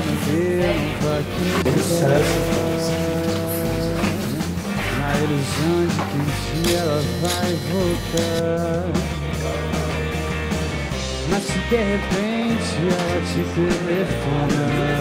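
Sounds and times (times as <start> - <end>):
person singing: 0.0 - 10.5, 11.2 - 15.0
electric guitar: 0.0 - 15.0
rock band playing: 0.0 - 15.0.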